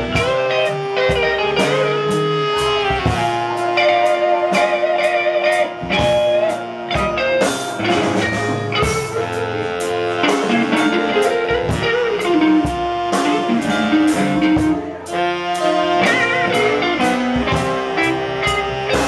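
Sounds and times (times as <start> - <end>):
drum kit beat: 0.0 - 19.0
electric guitar: 0.0 - 19.0
saxophones: 0.0 - 19.0.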